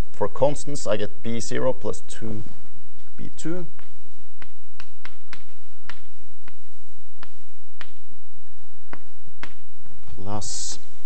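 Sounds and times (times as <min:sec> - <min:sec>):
chalk tapping on blackboard: 0:03.2 - 0:08.1, 0:08.9 - 0:10.0.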